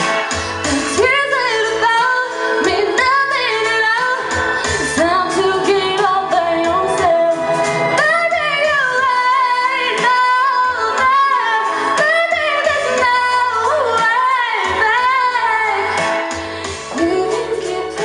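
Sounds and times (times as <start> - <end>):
woman singing a pop ballad: 0.0 - 18.0.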